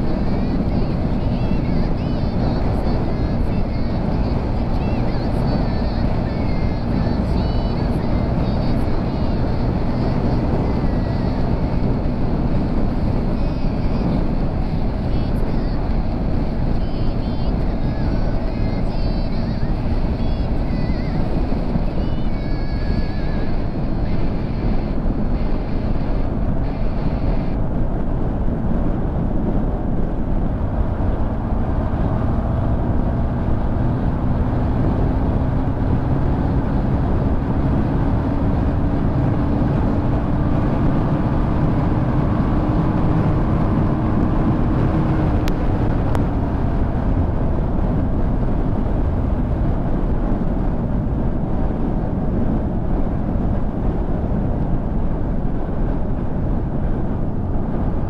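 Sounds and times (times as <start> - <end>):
motorcycle engine hum: 0.0 - 58.0
wind and road rush: 0.0 - 58.0.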